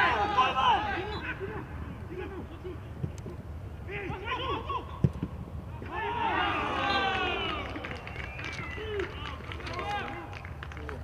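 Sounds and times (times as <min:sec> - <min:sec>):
footballers shouting: 0:00.0 - 0:02.7, 0:05.7 - 0:10.3.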